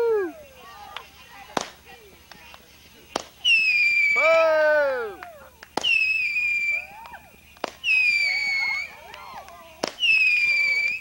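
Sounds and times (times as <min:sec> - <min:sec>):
firework crackling: 0:00.0 - 0:11.0
shrill firework whistle: 0:03.4 - 0:11.0.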